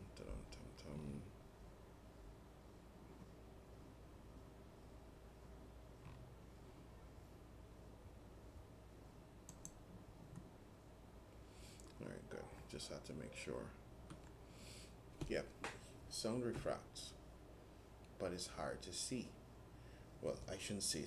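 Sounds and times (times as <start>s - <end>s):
faint computer mouse clicks: 9.5s - 10.5s.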